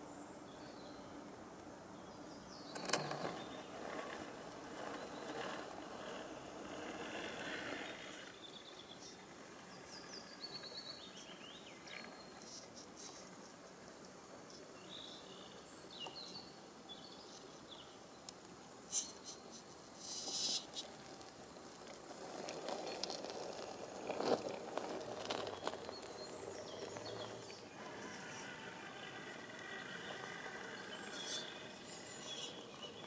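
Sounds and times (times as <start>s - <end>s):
tyres scrabbling on rock: 2.8s - 8.4s, 20.2s - 32.5s
insects chirping: 25.5s - 33.0s
motor and gear whine: 25.6s - 33.0s.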